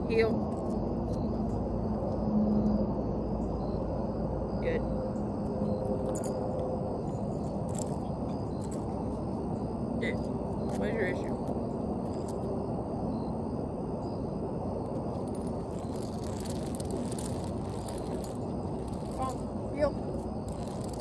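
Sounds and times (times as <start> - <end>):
outdoor background rumble: 0.0 - 21.0.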